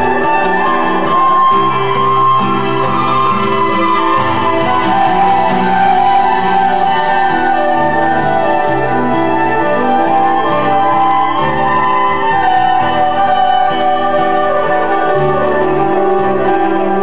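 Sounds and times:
fiddle lead: 0.0s - 17.0s
guitar: 0.0s - 17.0s.

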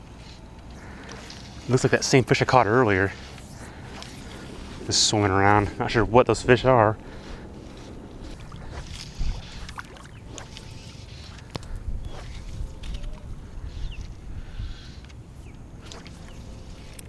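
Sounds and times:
wind rumble on microphone: 3.0s - 17.0s
water sloshing around legs: 7.0s - 13.2s, 15.8s - 17.0s
small splashes: 8.3s - 11.4s.

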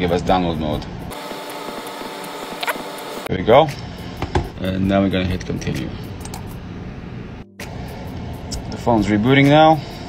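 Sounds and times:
machine hum with whine: 1.1s - 3.3s.

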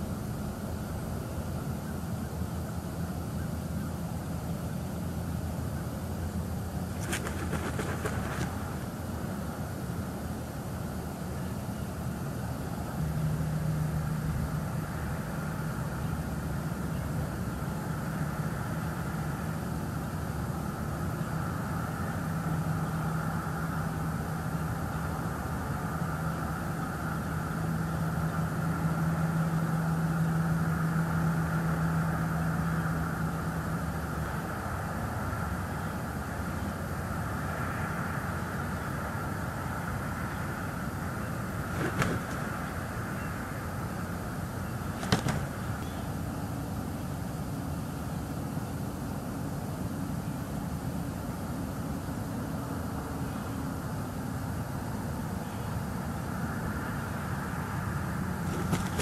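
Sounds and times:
engine humming: 0.0s - 59.0s
outdoor background hiss: 0.0s - 59.0s.

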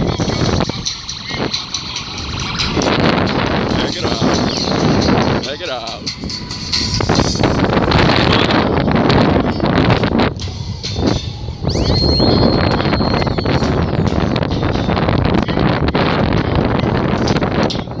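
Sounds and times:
high whistling tone: 0.0s - 3.3s, 10.4s - 15.5s
wind buffeting microphone: 0.0s - 18.0s.

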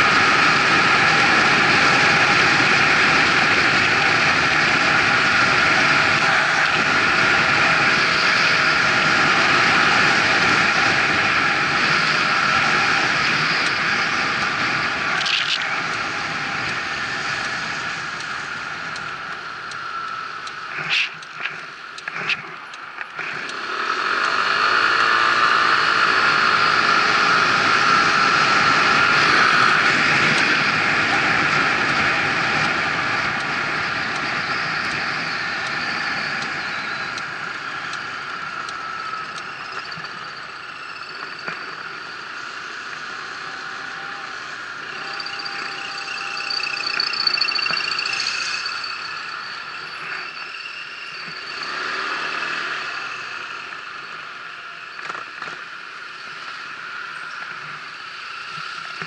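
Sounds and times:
road and wind noise: 0.0s - 59.0s
scooter engine running: 0.0s - 59.0s.

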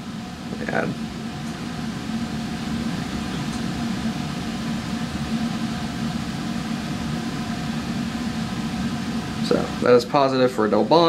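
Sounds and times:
exhaust fan humming: 0.0s - 11.0s.

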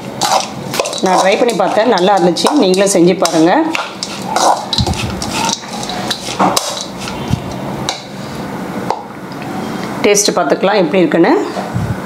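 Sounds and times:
metal spoon scraping and clinking bowl: 0.1s - 7.3s.

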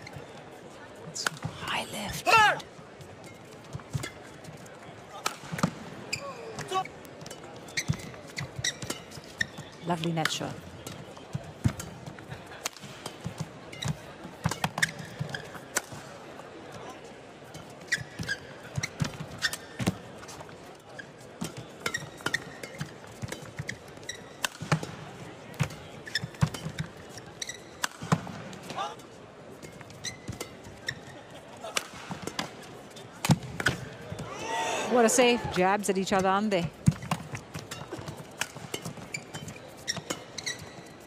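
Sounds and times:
arena background noise: 0.0s - 41.0s
shoe squeaks on court floor: 6.1s - 9.8s, 13.7s - 15.7s, 17.6s - 20.0s, 21.0s - 24.5s, 26.0s - 27.9s, 29.6s - 31.4s, 36.8s - 41.0s
rackets hitting shuttlecock: 21.4s - 25.0s.

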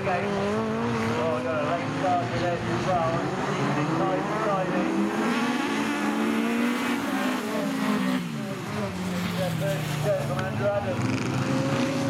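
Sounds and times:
race car engines revving: 0.0s - 12.0s.

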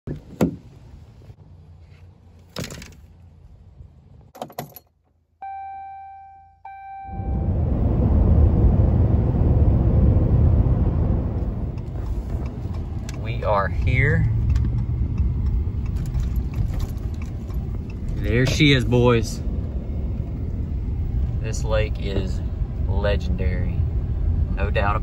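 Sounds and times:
truck engine and road noise: 0.0s - 25.0s
knocks and rattles: 2.5s - 3.1s, 14.3s - 18.7s
dashboard chime tones: 5.4s - 7.4s.

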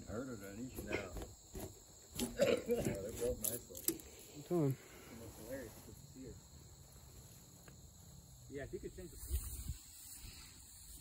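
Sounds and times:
high-pitched insect drone: 3.3s - 11.0s.

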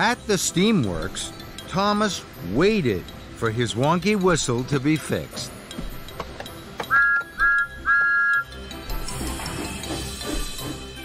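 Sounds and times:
background music: 0.0s - 11.0s
steam whistle toots: 6.9s - 8.6s.

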